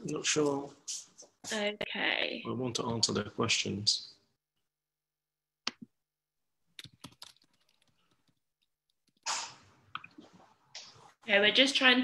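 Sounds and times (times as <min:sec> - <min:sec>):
computer keyboard clicks: 0:06.8 - 0:08.2.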